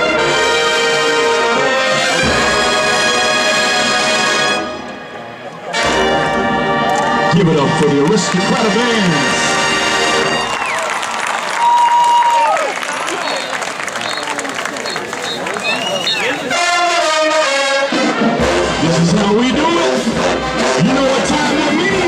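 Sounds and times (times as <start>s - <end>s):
marching band brass playing: 0.0s - 11.3s, 12.8s - 22.0s
crowd cheering: 10.0s - 17.2s.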